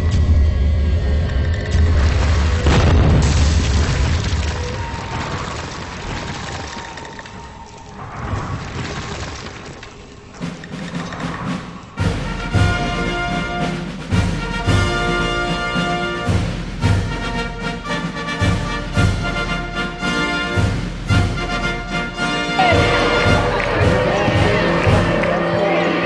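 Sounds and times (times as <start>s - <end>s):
deep rumbling boom: 0.0s - 5.6s
rumble of crumbling debris: 0.0s - 12.0s
stone wall crashing: 2.0s - 7.0s, 8.1s - 10.2s.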